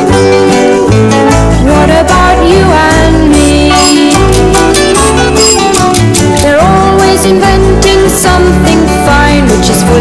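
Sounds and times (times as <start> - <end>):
bass line: 0.0 - 10.0
pop song guitar: 0.0 - 10.0.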